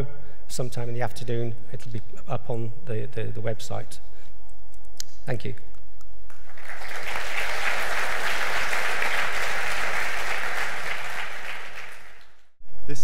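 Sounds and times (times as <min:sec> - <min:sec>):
large audience applauding: 0:06.3 - 0:12.5.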